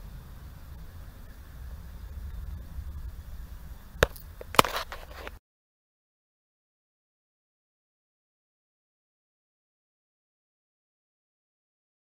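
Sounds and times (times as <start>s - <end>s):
low rumble on microphone: 0.0s - 5.4s.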